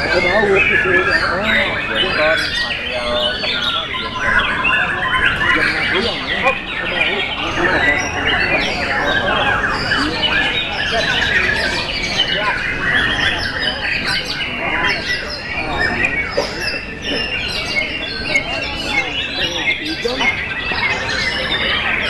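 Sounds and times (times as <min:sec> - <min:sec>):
birds singing in chorus: 0:00.0 - 0:22.0
murmur of voices: 0:00.0 - 0:22.0.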